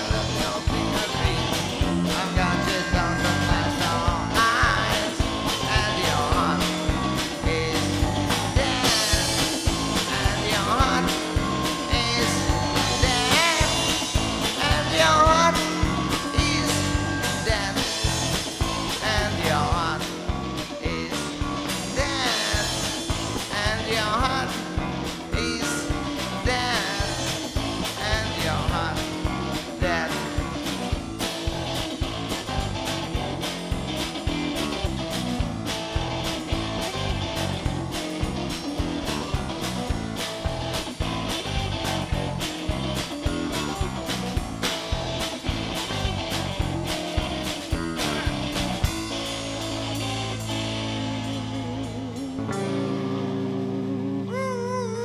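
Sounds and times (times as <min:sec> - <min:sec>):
drum kit: 0:00.0 - 0:54.4
bass guitar: 0:00.0 - 0:55.0
electric guitar: 0:00.0 - 0:55.0.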